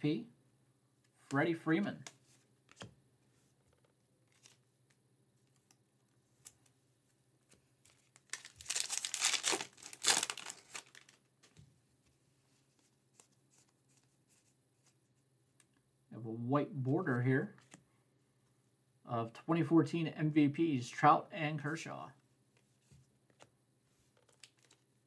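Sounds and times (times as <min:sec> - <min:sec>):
card pack wrapper tearing: 0:07.9 - 0:11.2.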